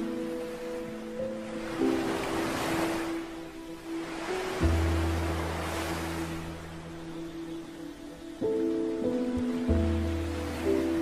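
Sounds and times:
calm music of held notes: 0:00.0 - 0:11.0
ocean waves: 0:00.0 - 0:11.0.

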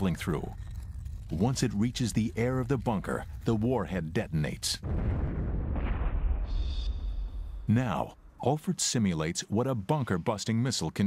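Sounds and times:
explosion rumble and roar: 0:00.0 - 0:08.4.

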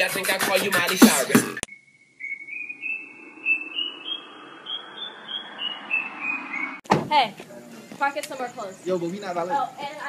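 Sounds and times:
high whistled tone: 0:01.7 - 0:06.8.

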